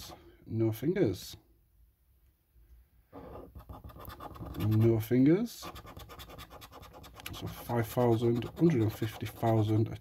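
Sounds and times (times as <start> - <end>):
disc scraping scratch card: 3.2 - 4.8, 5.6 - 9.8.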